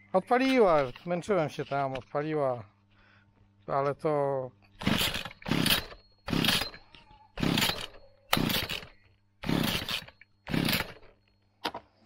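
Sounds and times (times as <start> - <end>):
engine turning over: 4.8 - 6.8, 7.4 - 11.1
recoil starter cord pulls: 4.8 - 11.1.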